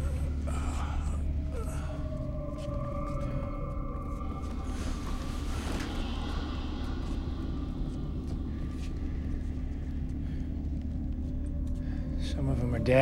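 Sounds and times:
low rumbling hum: 0.0s - 13.0s.

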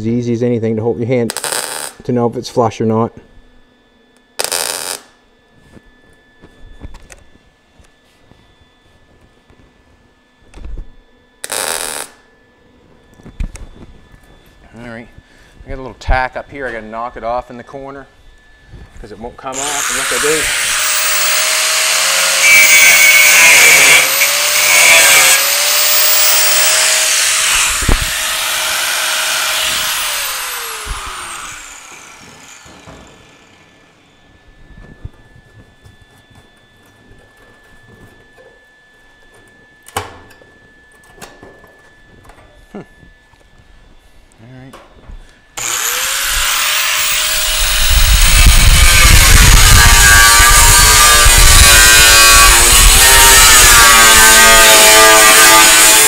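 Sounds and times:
angle grinder grinding steel: 19.5s - 33.7s, 45.6s - 56.0s.

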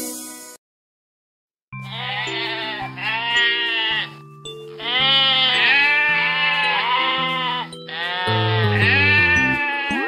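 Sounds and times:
children's song backing track: 1.8s - 10.0s
sheep bleating: 1.8s - 10.0s.

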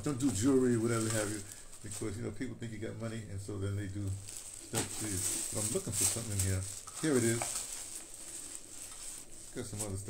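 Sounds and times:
plastic bag rustling: 0.0s - 10.0s.

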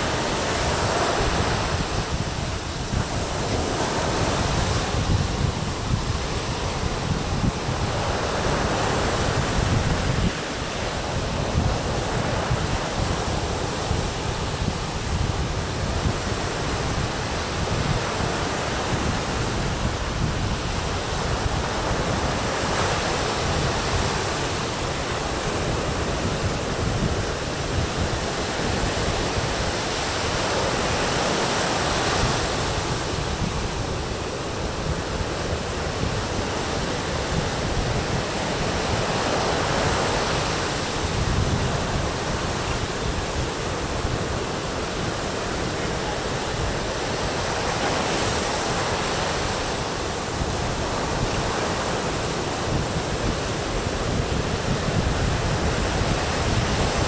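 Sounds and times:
ocean waves breaking on beach: 0.0s - 57.0s.

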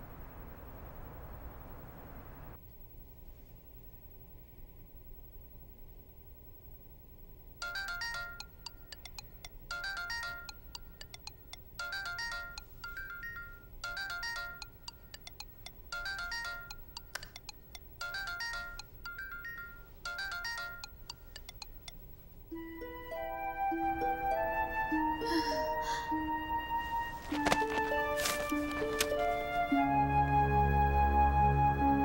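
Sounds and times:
mobile phone ringtone jingle: 7.6s - 8.6s, 9.7s - 10.7s, 11.8s - 15.3s, 15.9s - 17.1s, 18.0s - 21.1s.

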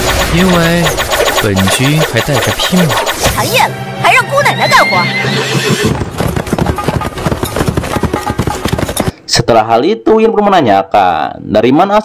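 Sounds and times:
horse whinny: 4.5s - 6.0s
galloping hoofbeats: 5.2s - 9.2s.

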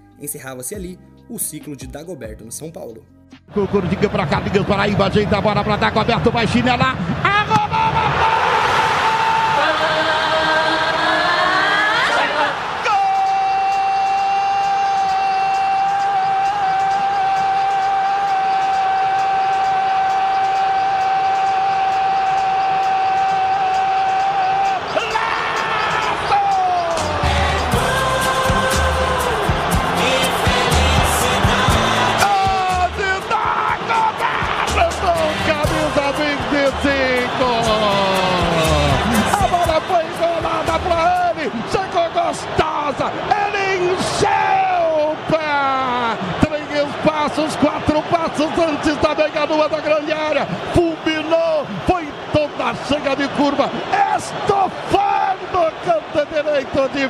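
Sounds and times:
excited fast commentary: 0.2s - 8.6s, 32.2s - 57.0s
commentator shouting goal: 32.1s - 57.0s.

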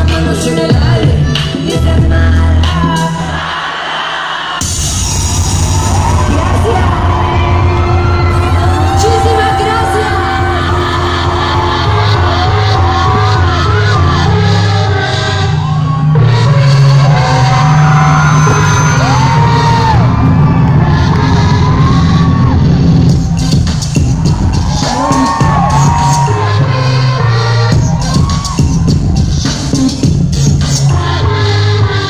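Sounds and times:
loud live concert music: 0.0s - 32.0s.

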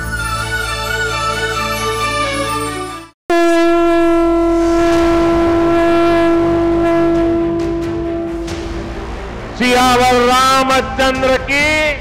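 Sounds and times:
long horn-like note: 3.3s - 9.2s
low drone: 3.3s - 9.6s.

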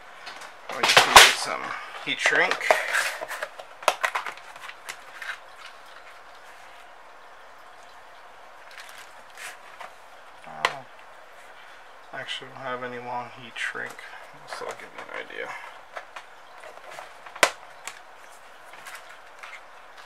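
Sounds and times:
small items handled on workbench: 0.2s - 6.9s, 8.7s - 10.0s, 13.8s - 20.0s
person speaking: 0.7s - 3.4s, 10.4s - 11.0s, 12.1s - 15.8s.

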